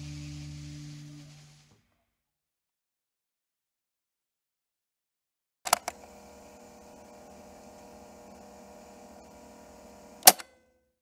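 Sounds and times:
electrical hum with hiss: 0.0 - 1.7
steady held tones: 0.0 - 1.8.

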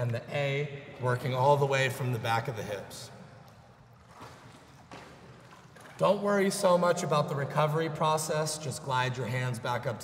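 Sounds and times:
water sloshing and lapping: 3.4 - 6.5.

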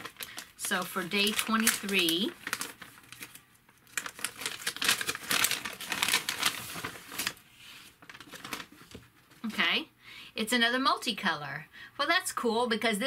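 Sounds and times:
plastic bag crinkling: 0.0 - 9.5.

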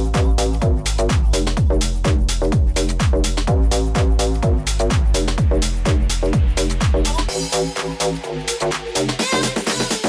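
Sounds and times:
bass house music: 0.0 - 10.0
kick drum: 0.0 - 10.0.

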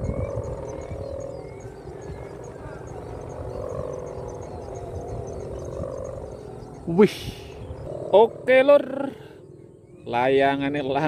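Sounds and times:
buzzing drone of kite hummers: 0.0 - 11.0
low wind rumble: 0.0 - 11.0.

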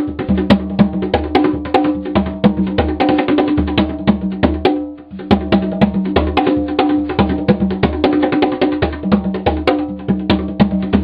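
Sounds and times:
conga drums played by hand: 0.0 - 11.0.

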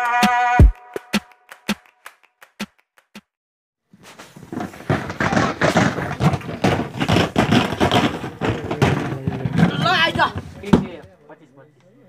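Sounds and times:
group of people talking: 8.0 - 12.0.

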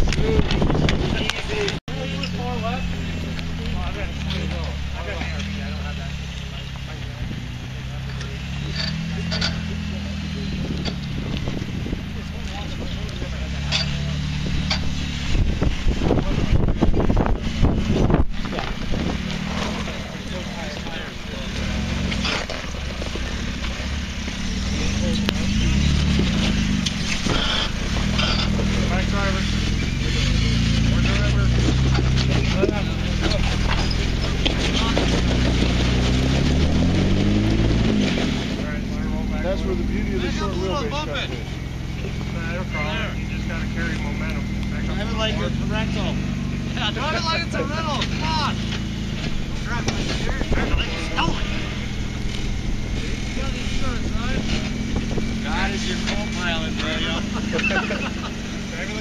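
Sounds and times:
car engine running at low revs: 0.0 - 59.0
people talking: 0.0 - 59.0.

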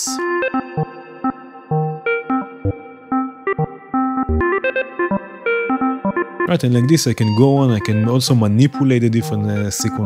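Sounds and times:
synth melody of plucky notes: 0.0 - 10.0.

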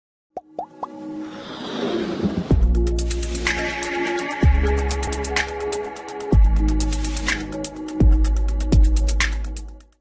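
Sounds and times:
rising plop sound effects: 0.4 - 1.0
musical build-up: 0.6 - 7.9.

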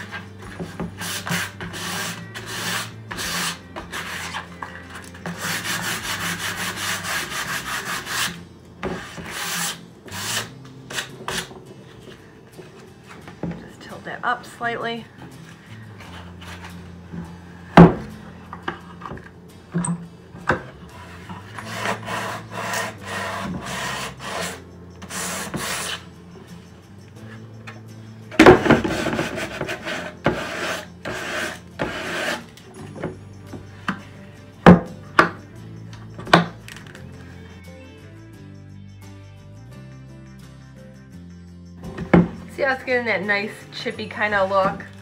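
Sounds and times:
sandpaper rasping on wood: 0.0 - 4.6, 5.3 - 11.5, 21.0 - 26.0, 28.7 - 32.5.

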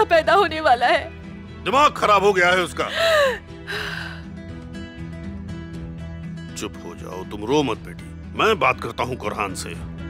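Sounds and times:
soft background music: 0.0 - 10.0
woman sobbing: 2.8 - 4.3
gasping breath: 2.9 - 4.5.

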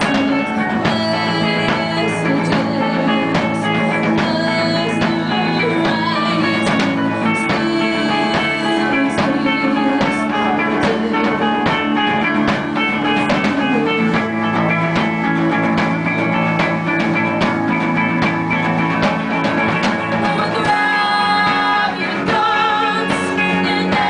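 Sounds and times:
person singing: 0.0 - 15.1, 20.1 - 24.0
drum kit: 0.0 - 24.0
electric bass: 0.0 - 24.0
electric guitar: 0.0 - 24.0.

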